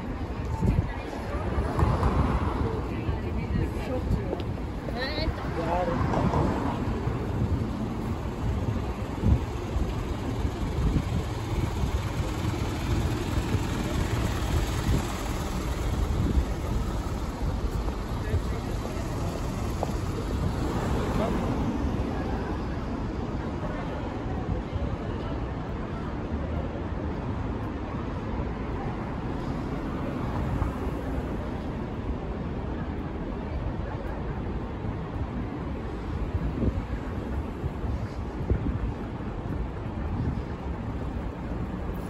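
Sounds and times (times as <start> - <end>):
wind on microphone: 0.0 - 22.8, 35.0 - 42.0
passers-by talking: 0.0 - 42.0
traffic rumble: 0.0 - 42.0.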